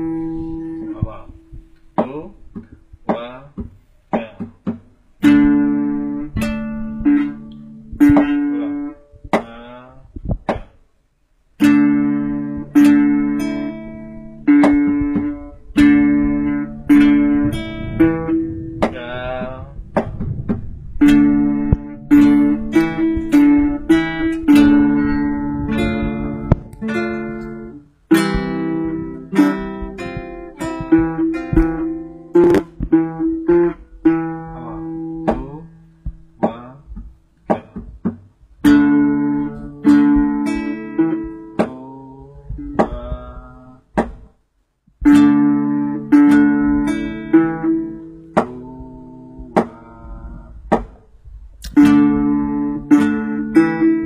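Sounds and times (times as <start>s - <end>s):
guitar chords ringing: 0.0s - 3.6s, 5.2s - 9.9s, 11.6s - 38.0s, 38.6s - 43.6s, 45.0s - 51.0s, 51.6s - 54.0s.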